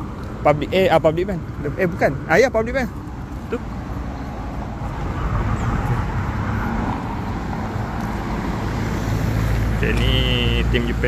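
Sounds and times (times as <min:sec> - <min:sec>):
cars passing on road: 0:00.0 - 0:11.0.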